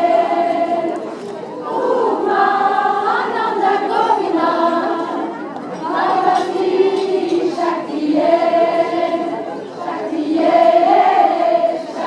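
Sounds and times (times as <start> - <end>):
group singing long notes: 0.0 - 12.0.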